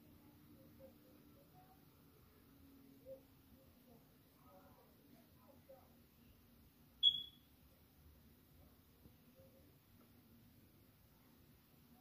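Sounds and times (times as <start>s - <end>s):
short high-pitched beep: 7.0s - 7.5s.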